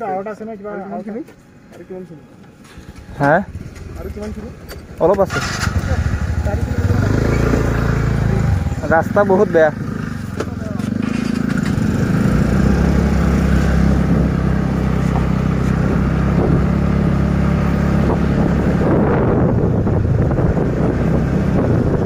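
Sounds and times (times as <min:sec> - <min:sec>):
motorbike engine: 0:02.7 - 0:22.0
wind noise on microphone: 0:11.4 - 0:22.0.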